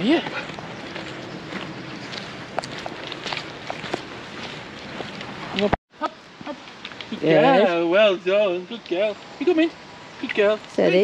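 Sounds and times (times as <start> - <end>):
footsteps on dirt path: 0.0 - 5.8.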